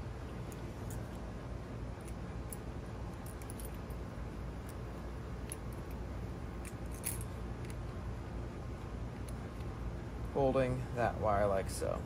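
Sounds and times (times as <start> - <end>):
steady low hum: 0.0 - 12.0
metallic clicks and clinks: 2.0 - 4.8, 6.6 - 7.8.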